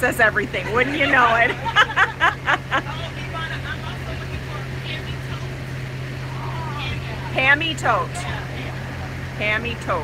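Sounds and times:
women's voices: 0.0 - 2.9, 6.7 - 8.4, 9.4 - 10.0
bus engine drone: 0.0 - 10.0.

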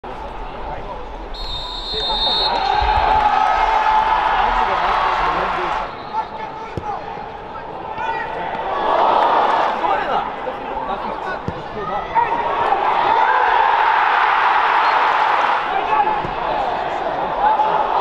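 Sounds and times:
players and spectators voices: 0.0 - 18.0.

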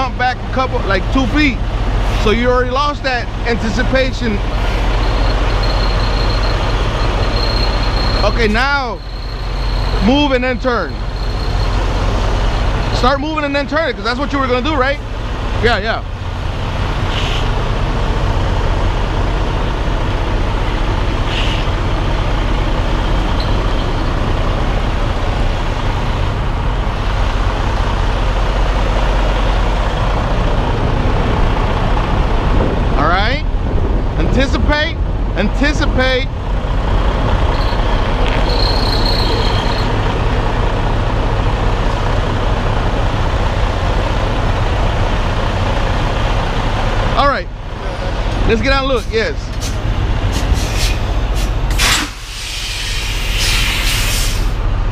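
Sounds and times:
diesel truck engine rumbling: 0.0 - 54.9.

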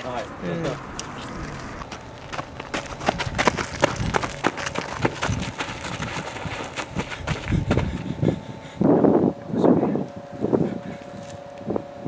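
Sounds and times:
footsteps running on dirt: 1.8 - 8.4.

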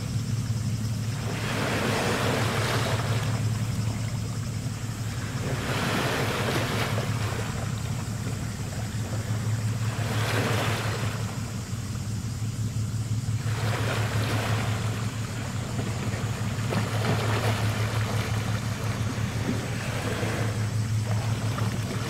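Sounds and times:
ship engine drone: 0.0 - 22.0
water and wind hiss: 0.0 - 22.0.

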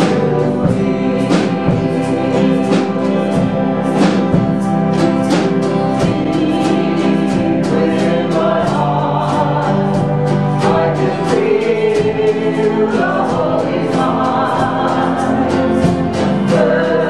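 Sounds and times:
women singing together: 0.0 - 4.3, 5.6 - 17.0
band with steady beat: 0.0 - 17.0
strummed acoustic guitar: 0.0 - 17.0.

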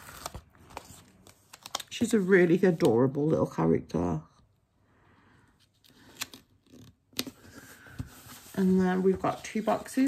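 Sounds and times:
paper stickers snapping and rustling: 0.0 - 2.1.

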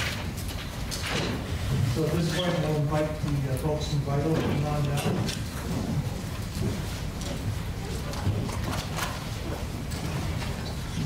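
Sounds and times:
low room rumble: 0.0 - 11.0
papers being handled: 0.0 - 11.0.

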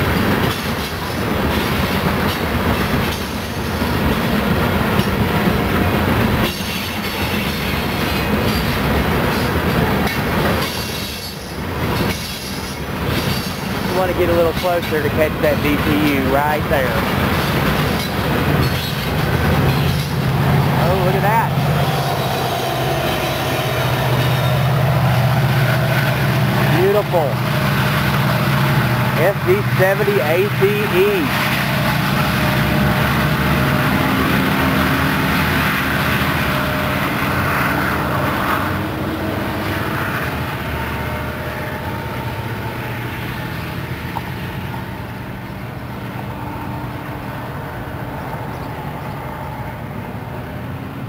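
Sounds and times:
diesel locomotive drone: 0.0 - 51.0
freight cars rolling on rails: 0.0 - 51.0.

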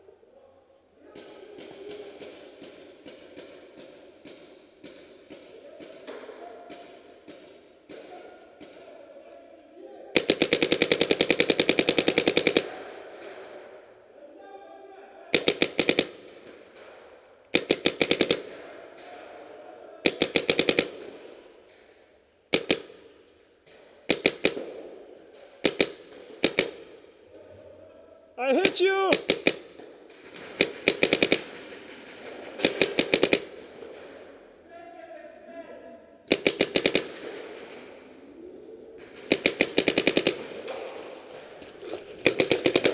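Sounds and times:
paintball marker firing: 1.2 - 8.8, 10.2 - 13.7, 15.3 - 19.3, 20.0 - 27.2, 28.6 - 34.6, 36.3 - 38.2, 38.9 - 42.9.

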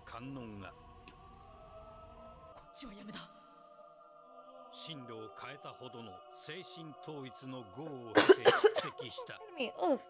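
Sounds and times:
man narrating: 0.0 - 0.7, 2.8 - 3.3, 4.8 - 9.7
soft music drone: 0.0 - 10.0
loud coughing: 8.2 - 9.3.

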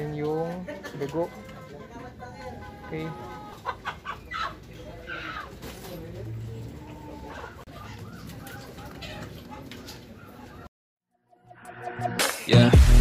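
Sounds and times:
chickens clucking: 0.0 - 10.7.

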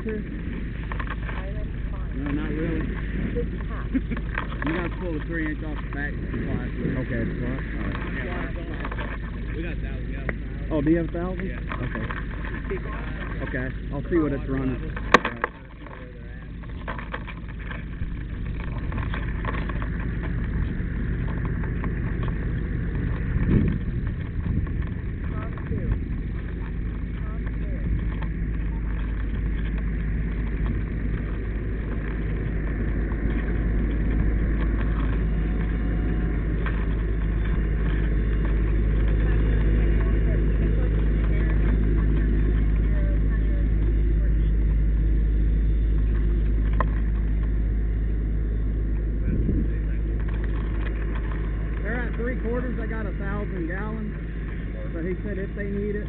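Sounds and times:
diesel engine low rumble: 0.0 - 56.0.

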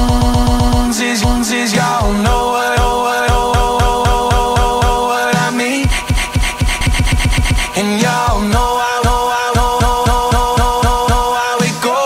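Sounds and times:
hip-hop beat in stutter loop: 0.0 - 12.0.

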